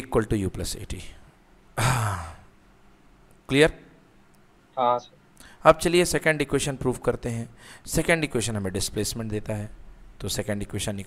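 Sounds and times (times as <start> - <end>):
man sighing: 1.8 - 2.5.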